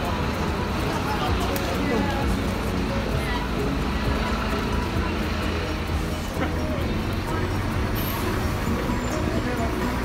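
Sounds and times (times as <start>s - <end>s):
people talking: 0.0s - 10.0s
traffic rumble: 0.0s - 10.0s.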